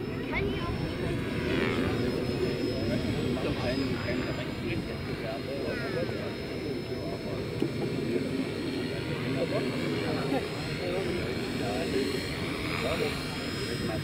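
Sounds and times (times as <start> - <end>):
people talking: 0.0 - 14.0
rc helicopter motor whine: 0.0 - 14.0.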